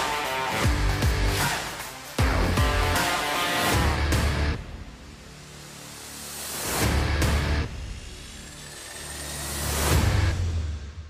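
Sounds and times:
low drone: 3.6 - 11.0.

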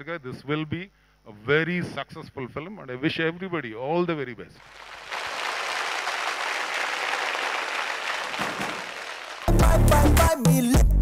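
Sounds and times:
audience applauding: 4.6 - 9.9.

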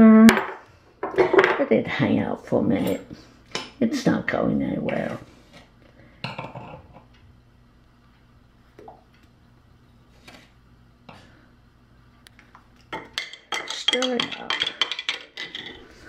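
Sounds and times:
low steady hum: 0.0 - 16.0
kitchenware clattering: 0.4 - 1.7, 12.9 - 16.0.

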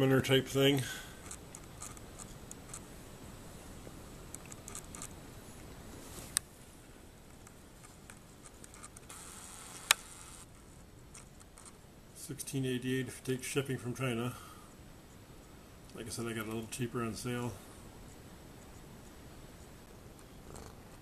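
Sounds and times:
faint rustling: 0.8 - 9.1
sharp clicks: 8.1 - 10.2.

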